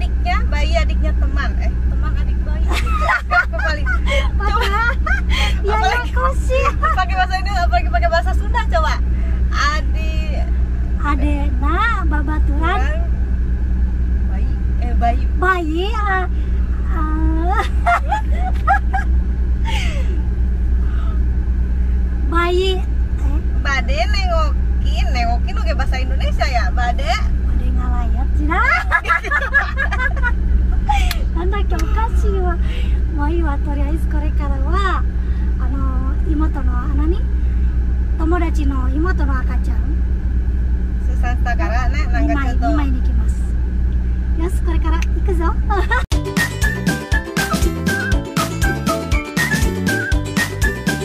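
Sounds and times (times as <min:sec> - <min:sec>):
woman talking: 0:00.0 - 0:13.1, 0:14.3 - 0:16.3, 0:16.9 - 0:18.1, 0:22.3 - 0:29.9, 0:30.9 - 0:37.3, 0:38.2 - 0:40.0, 0:41.0 - 0:43.6, 0:44.3 - 0:46.0
women's voices: 0:00.0 - 0:13.1, 0:14.3 - 0:18.9, 0:22.3 - 0:37.3, 0:38.2 - 0:40.0, 0:41.0 - 0:43.6, 0:44.3 - 0:46.1
car rumble inside cabin: 0:00.0 - 0:51.0.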